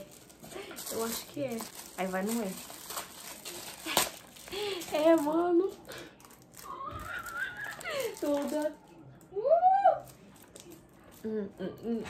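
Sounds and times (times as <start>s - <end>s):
packaging rustle: 0.0s - 9.0s.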